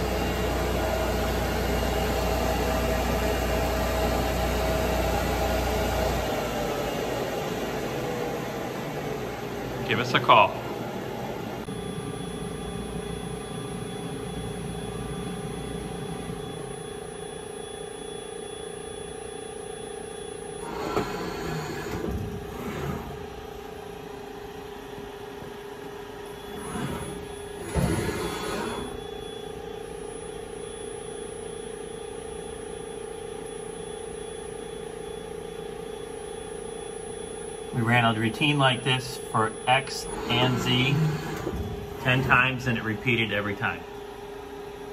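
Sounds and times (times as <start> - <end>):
grinder machine humming: 0.0 - 17.1, 20.5 - 30.1, 37.8 - 44.9
whirring axis moves: 26.3 - 29.2, 40.0 - 42.8.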